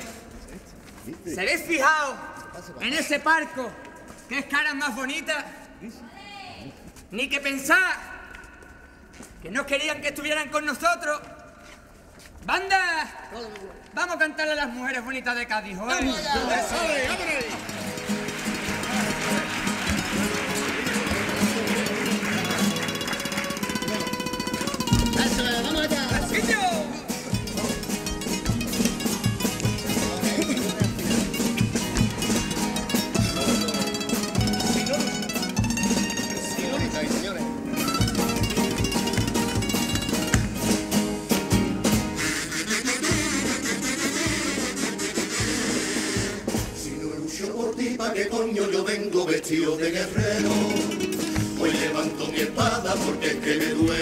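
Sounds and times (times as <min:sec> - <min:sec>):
crowd noise: 0:15.2 - 0:54.0
guitars: 0:16.0 - 0:46.9, 0:50.1 - 0:54.0
steady drum beat: 0:23.5 - 0:36.2, 0:36.8 - 0:47.1, 0:50.0 - 0:54.0.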